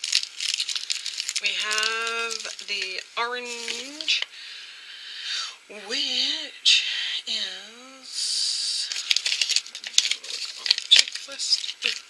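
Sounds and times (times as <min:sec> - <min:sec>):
plastic crackles and clicks: 0:00.0 - 0:04.3, 0:08.9 - 0:12.0
plastic packaging rustling: 0:00.0 - 0:04.3, 0:08.8 - 0:12.0.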